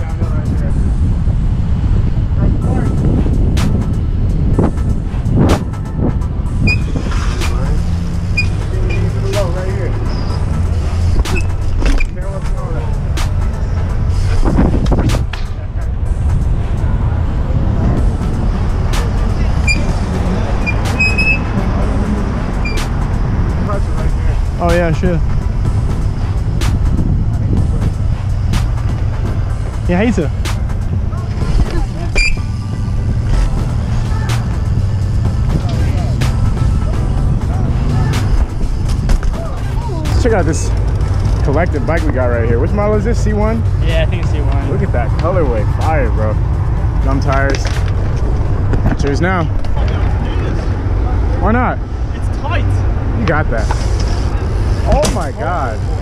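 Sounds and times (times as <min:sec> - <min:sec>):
bike rolling on concrete: 0:00.0 - 0:56.0
wind rumbling on microphone: 0:00.0 - 0:56.0.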